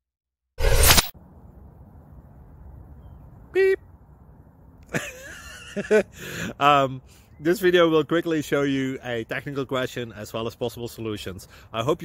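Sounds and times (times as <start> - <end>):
whoosh: 0.6 - 1.2
low outdoor rumble and hiss: 1.2 - 12.0.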